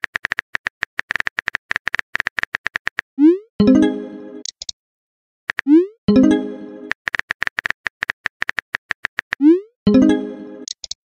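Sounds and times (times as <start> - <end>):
keyboard typing clicks: 4.4 - 4.8, 6.8 - 9.5, 10.6 - 11.0
bright chiming tone: 6.1 - 6.9, 9.9 - 10.7.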